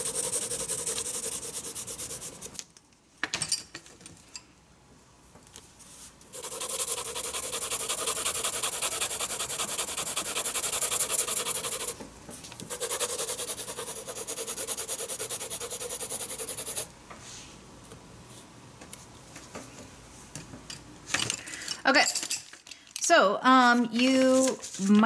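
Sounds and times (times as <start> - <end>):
pencil scribbling on paper: 0.0 - 2.5, 6.3 - 12.0, 12.7 - 16.9.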